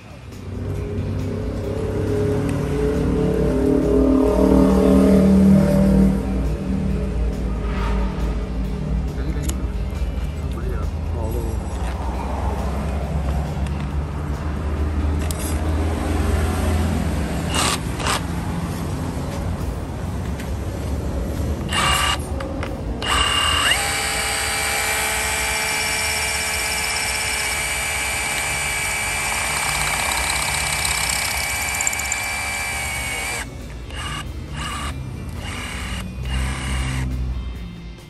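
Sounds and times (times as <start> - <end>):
rotary hammer drilling concrete: 17.5 - 18.3, 21.7 - 22.3, 23.0 - 37.1.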